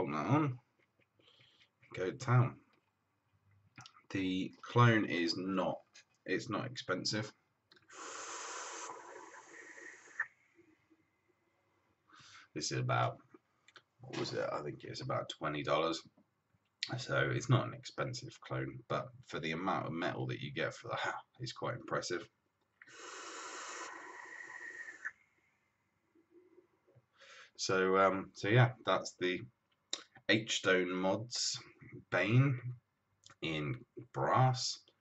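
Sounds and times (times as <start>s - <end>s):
airy hiss of vape draw: 7.9s - 10.3s, 22.9s - 25.1s.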